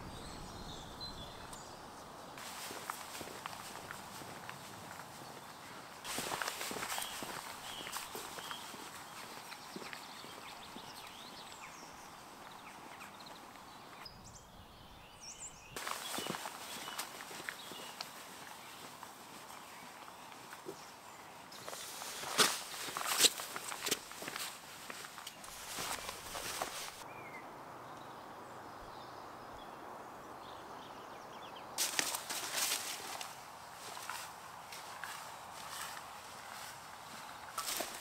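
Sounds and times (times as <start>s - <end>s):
small birds chirping: 0.0s - 38.0s
boot footsteps on stone and grass: 2.4s - 11.5s, 15.8s - 20.9s, 21.5s - 27.0s, 31.8s - 38.0s.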